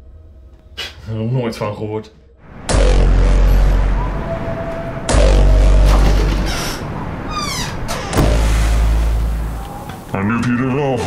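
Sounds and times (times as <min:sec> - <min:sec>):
deep boom hits with rumble: 0:02.4 - 0:04.4, 0:05.0 - 0:09.7.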